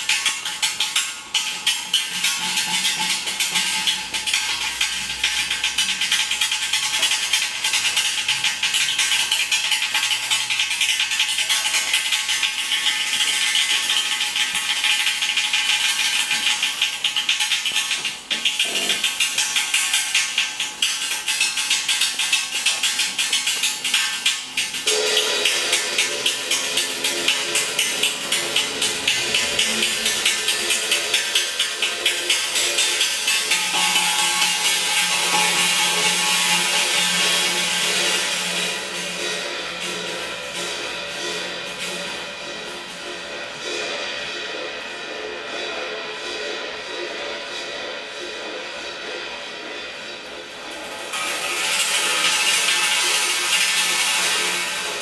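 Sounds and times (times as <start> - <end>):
drumstick tapping cymbal: 0.0 - 55.0
low sustained pitched notes: 24.8 - 52.1.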